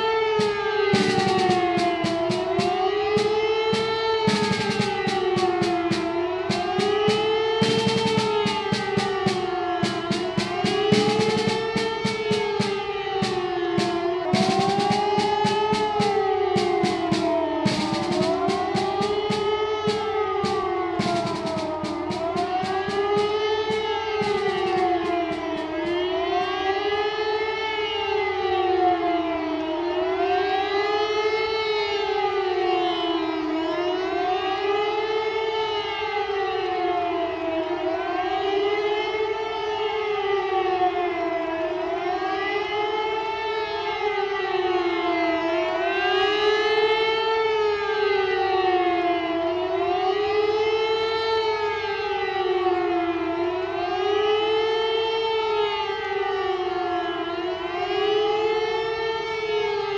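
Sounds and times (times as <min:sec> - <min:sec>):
siren wailing: 0:00.0 - 0:59.9.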